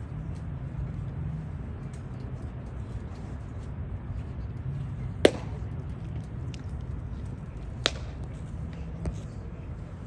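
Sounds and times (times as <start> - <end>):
baseball smacking into mitt: 5.2 - 5.6, 7.8 - 8.3.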